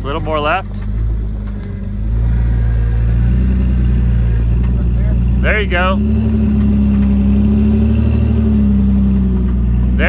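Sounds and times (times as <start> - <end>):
engine running at low revs: 0.0 - 10.0.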